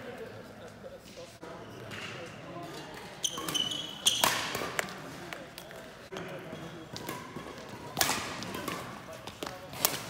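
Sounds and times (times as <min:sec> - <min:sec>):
shoes squeaking on floor: 0:03.2 - 0:04.5.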